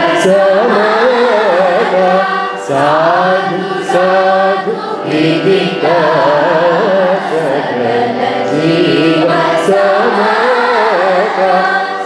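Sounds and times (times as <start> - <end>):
group singing in unison: 0.0 - 12.0.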